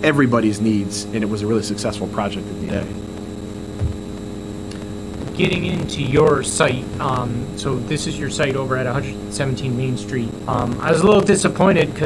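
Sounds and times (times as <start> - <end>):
electrical mains hum: 0.0 - 12.0
low thump: 3.8 - 4.1.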